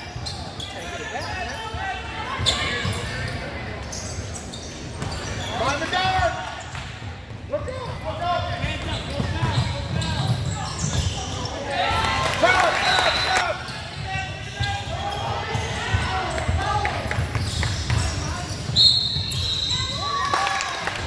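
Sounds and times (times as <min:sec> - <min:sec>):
basketball bouncing on court: 0:06.1 - 0:11.3
shouts and voices echoing: 0:07.5 - 0:17.4.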